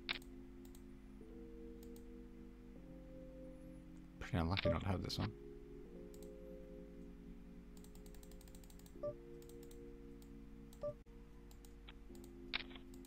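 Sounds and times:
computer keys clicking: 0.0 - 0.9, 1.8 - 2.1, 6.1 - 6.4, 7.8 - 13.0
soft sustained background chord: 0.0 - 13.0.

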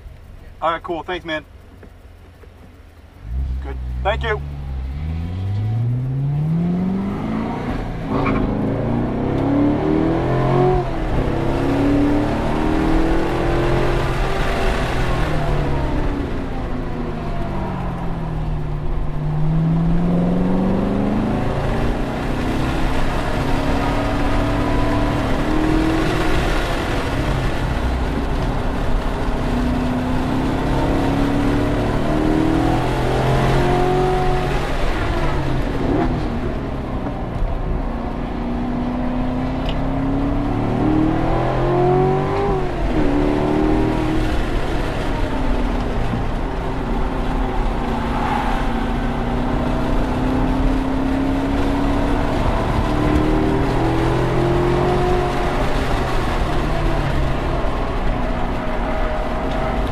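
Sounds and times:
car engine accelerating: 0.0 - 59.9.

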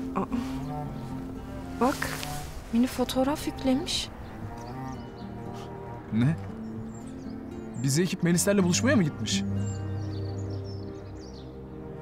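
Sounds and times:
soft drama score music: 0.0 - 12.0.

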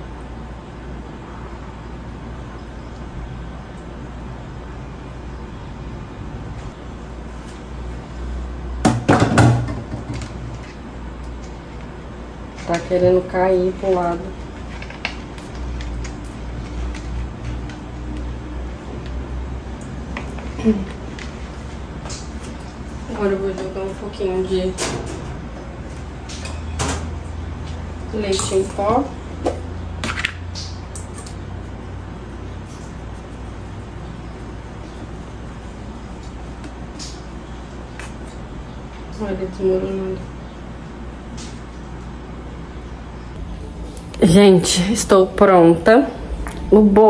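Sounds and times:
low steady hum: 0.0 - 47.0
metal can knock: 8.9 - 10.3
saucepan clattering in metal sink: 8.9 - 10.7.

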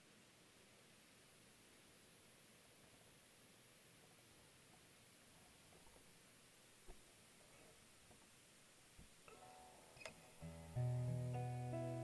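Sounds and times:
soft plucked guitar notes: 9.3 - 12.0
guitar chord strummed: 10.4 - 12.0.

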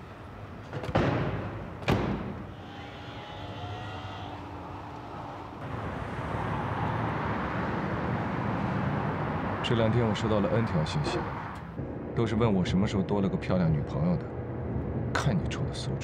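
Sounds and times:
city traffic rush: 0.0 - 12.2.

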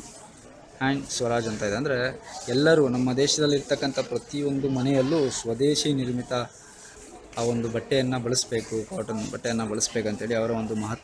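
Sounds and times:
man speaking: 0.8 - 6.5.

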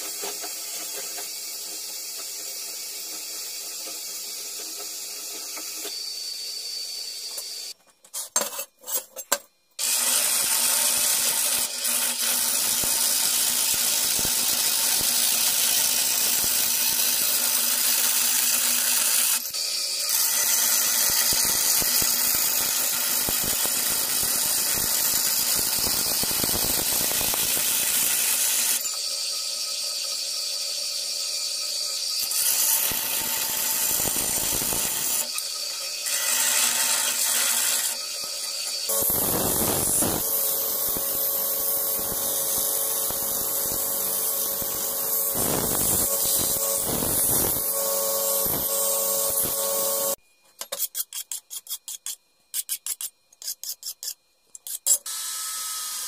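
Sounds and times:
band saw cutting steel: 9.8 - 50.2.

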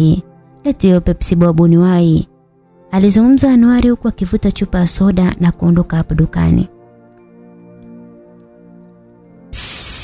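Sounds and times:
soft background music: 0.0 - 10.0
soda bottle opening hiss: 9.5 - 10.0.

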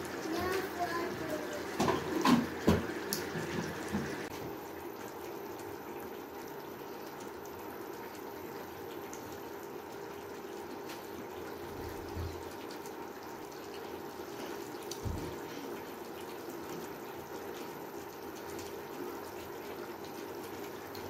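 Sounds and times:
sauce bubbling in a pan: 0.0 - 21.0.

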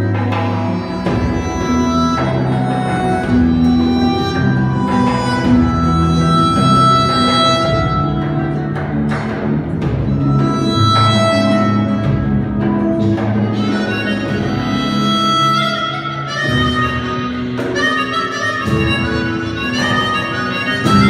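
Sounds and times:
electric bass: 0.0 - 15.3
chromatic harmonica melody: 0.0 - 21.0
flamenco guitar: 0.0 - 21.0
hand percussion: 0.0 - 21.0.

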